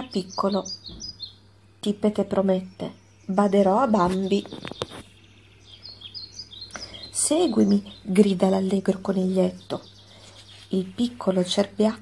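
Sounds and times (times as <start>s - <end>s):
bird chirps: 0.0s - 12.0s
faint low hum: 0.0s - 12.0s.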